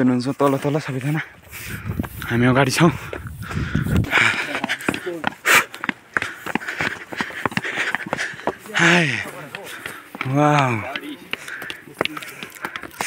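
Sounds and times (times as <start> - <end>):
footsteps on stone steps: 0.4 - 13.0
people talking: 2.2 - 3.1, 4.0 - 5.6, 8.2 - 12.8.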